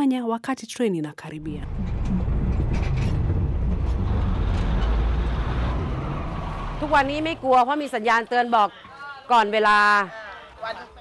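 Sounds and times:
train engine rumbling: 1.4 - 8.4.

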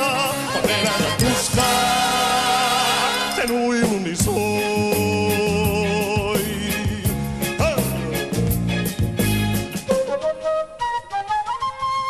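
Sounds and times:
flute solo: 9.8 - 12.0.

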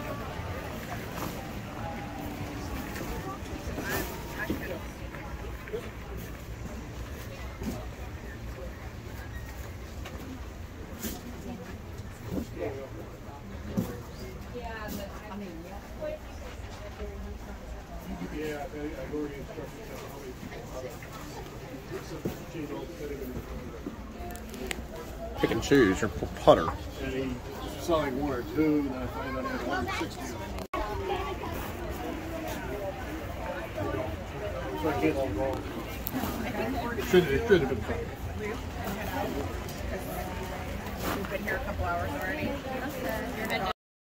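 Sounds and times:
faint music: 0.0 - 43.7
indistinct chatter: 0.0 - 43.8.

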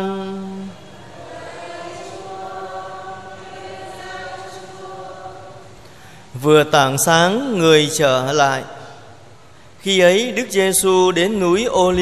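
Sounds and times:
choir softly chanting: 0.0 - 9.3.

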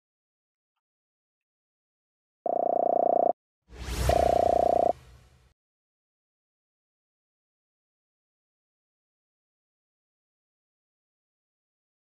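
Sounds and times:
buzzing tone: 4.0 - 5.0.

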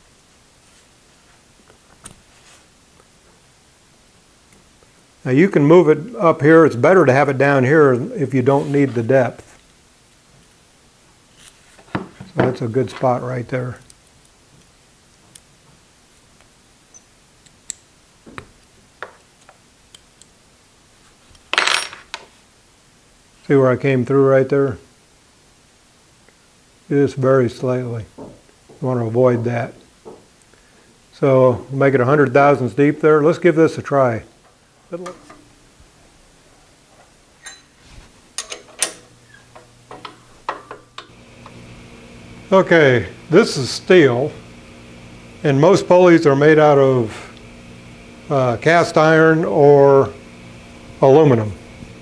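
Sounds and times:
metal bar clattering: 37.4 - 37.8
metallic clicks and clinks: 37.4 - 37.8.

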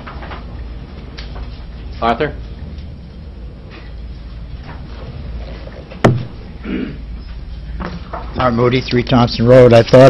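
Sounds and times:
steady low hum: 0.0 - 10.0
sharp thump with ringing tail: 6.0 - 6.6.

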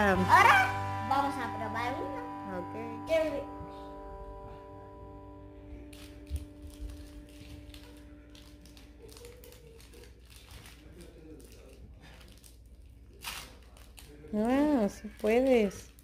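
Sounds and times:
plastic candy wrapper crinkling: 5.9 - 16.0.

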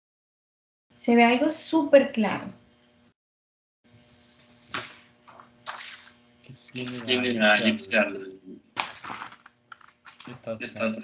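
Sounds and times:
person speaking: 6.5 - 8.5.

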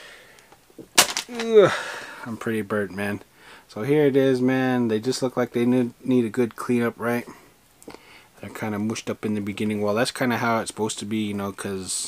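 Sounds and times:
man's short vocal sound: 1.3 - 2.0.

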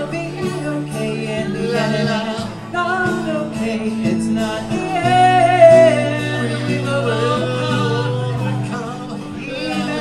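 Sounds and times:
acoustic guitars strumming: 0.0 - 10.0
man and woman singing together: 0.0 - 10.0.

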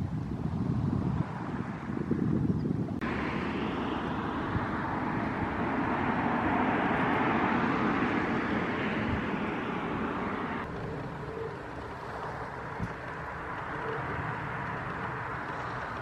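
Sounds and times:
road traffic: 0.0 - 16.0
wind rumble on microphone: 0.0 - 16.0.

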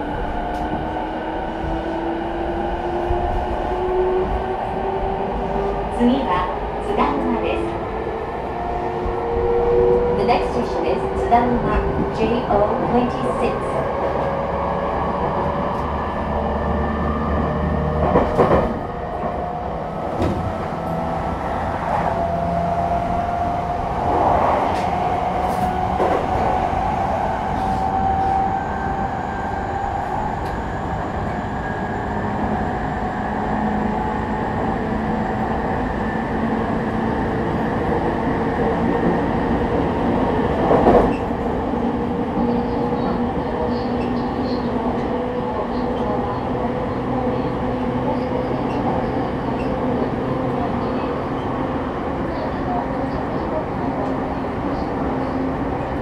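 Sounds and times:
wheels rumbling on rail: 0.0 - 56.0.

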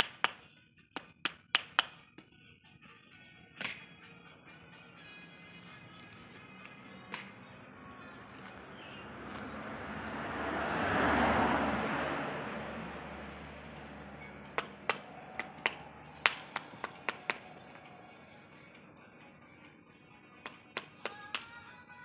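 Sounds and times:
broad rushing noise: 11.4 - 17.9.

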